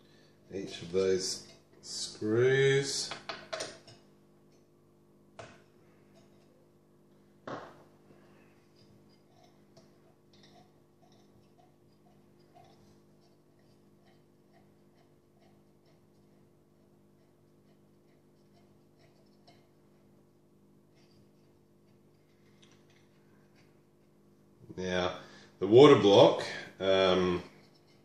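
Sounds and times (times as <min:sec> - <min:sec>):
low steady hum: 0:00.0 - 0:28.0.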